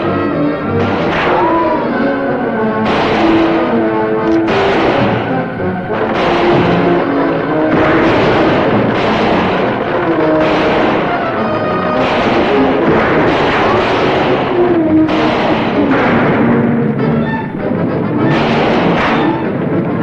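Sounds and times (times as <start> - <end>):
orchestral chase music: 0.0 - 20.0
timpani: 0.0 - 20.0.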